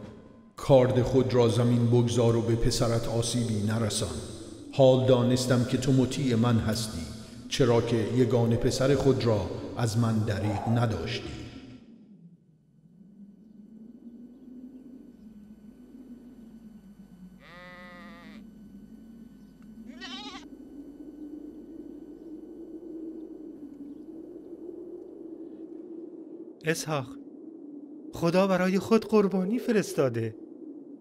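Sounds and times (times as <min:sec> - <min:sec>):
low steady hum: 0:00.0 - 0:31.0
ram bleating: 0:17.4 - 0:18.4, 0:19.9 - 0:20.4.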